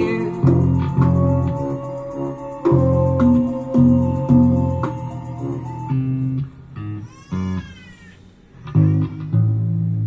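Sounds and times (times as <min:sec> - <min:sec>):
high sliding tone: 0:00.0 - 0:06.4
electric bass guitar notes: 0:00.0 - 0:07.0, 0:08.7 - 0:10.0.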